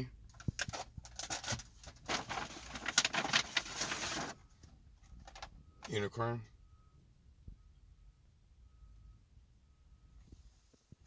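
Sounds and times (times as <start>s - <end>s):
plastic crinkling and rattling: 0.3s - 4.4s, 5.2s - 5.5s.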